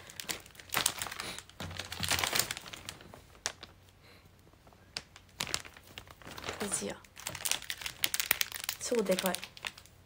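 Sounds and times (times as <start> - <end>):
plastic bag crinkling: 0.0 - 3.9, 4.5 - 10.0
cellophane crinkling: 0.0 - 10.0.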